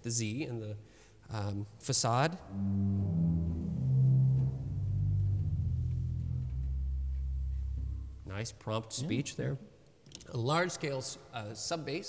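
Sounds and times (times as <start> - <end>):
low pipe organ notes: 2.4 - 8.6.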